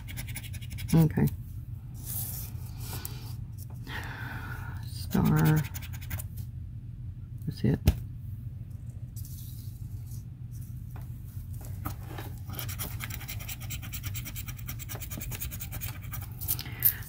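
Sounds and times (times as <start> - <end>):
scratching a lottery ticket: 0.0 - 1.3, 5.1 - 6.3, 12.4 - 16.6
low steady hum: 0.0 - 17.0.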